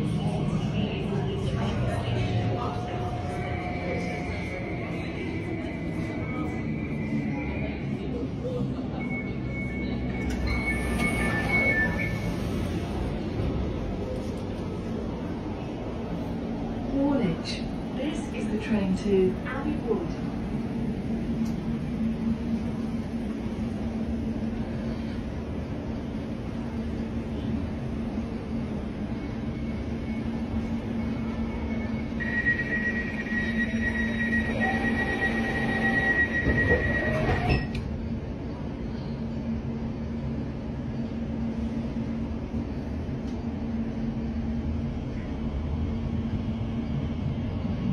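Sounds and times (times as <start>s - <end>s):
train rumble with low hum: 0.0s - 47.9s
high steady squeal: 31.1s - 37.7s.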